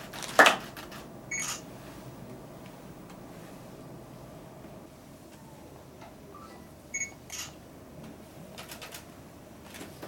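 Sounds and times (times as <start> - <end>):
camera shutter click: 0.5 - 1.6, 7.3 - 7.6
camera beep: 1.3 - 1.6, 6.9 - 7.6.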